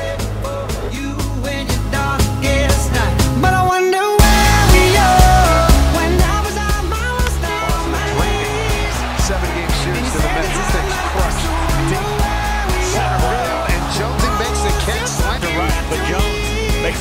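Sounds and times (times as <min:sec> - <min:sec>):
bass-heavy music with steady beat: 0:00.0 - 0:17.0.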